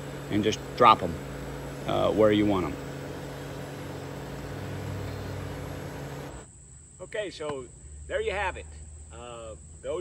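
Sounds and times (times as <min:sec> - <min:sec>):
tractor diesel engine running: 0:00.0 - 0:06.5.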